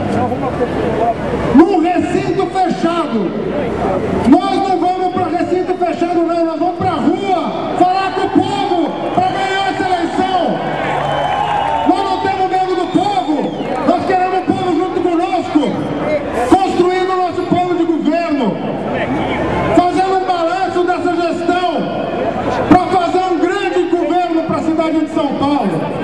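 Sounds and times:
man speaking over loudspeaker: 0.0s - 11.0s, 11.8s - 26.0s.

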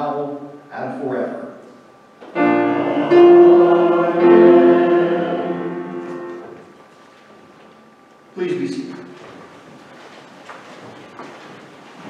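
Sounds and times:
keyboard accompaniment: 2.3s - 6.6s
congregation singing: 2.3s - 6.7s.

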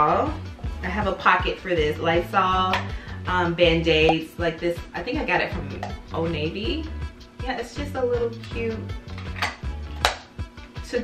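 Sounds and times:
background music with steady beat: 0.0s - 11.0s
metal tin snapping shut: 9.2s - 10.2s.

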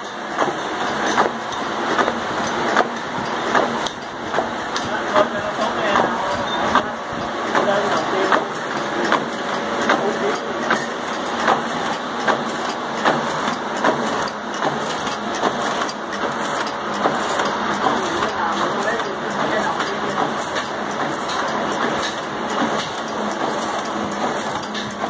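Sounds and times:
machine clattering with sharp knocks: 0.0s - 25.0s.

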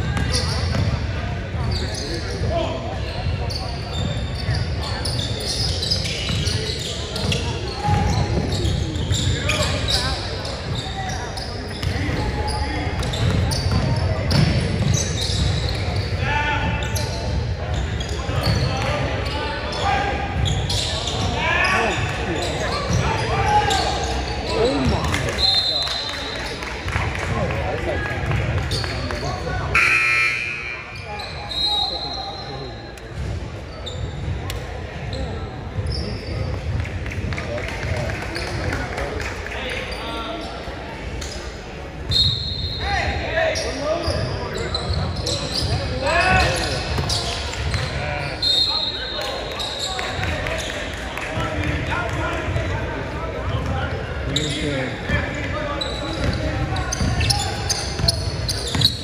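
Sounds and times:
sneakers squeaking: 0.0s - 27.5s, 28.2s - 39.0s, 39.6s - 59.0s
people shouting in a gym: 4.7s - 17.3s, 18.0s - 26.1s, 42.4s - 50.1s.

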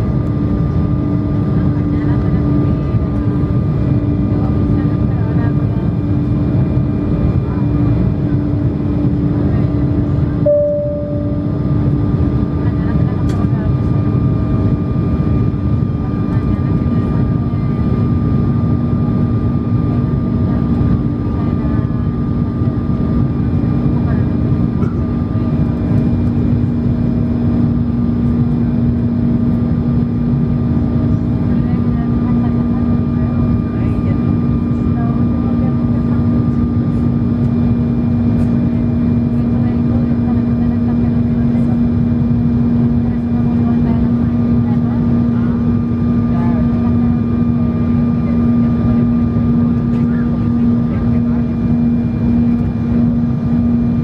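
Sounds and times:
jet engines and airflow rushing: 0.0s - 54.0s.

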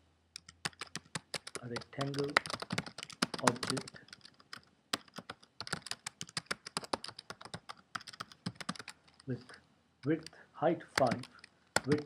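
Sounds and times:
computer keyboard typing: 0.4s - 9.3s, 11.0s - 12.0s.

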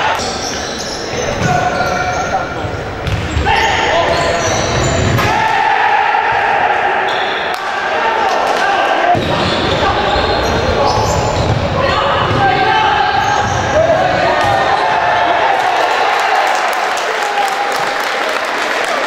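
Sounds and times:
ball bouncing on wooden court: 3.0s - 4.2s
players shouting: 3.2s - 18.3s.

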